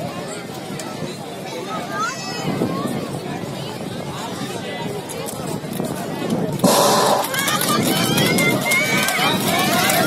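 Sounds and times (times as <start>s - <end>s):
crowd chatter and calls: 0.0s - 10.0s.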